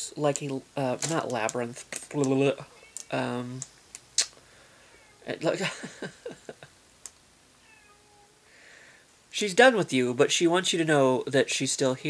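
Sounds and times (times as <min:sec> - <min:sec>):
cat meowing faintly: 0:04.8 - 0:05.4, 0:07.6 - 0:08.5.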